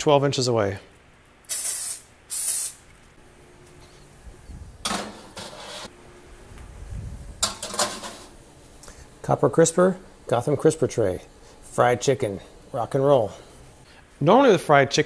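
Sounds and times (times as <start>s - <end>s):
hissing oil spray: 1.5s - 2.8s
metal trays clattering: 4.8s - 5.9s, 7.4s - 8.3s.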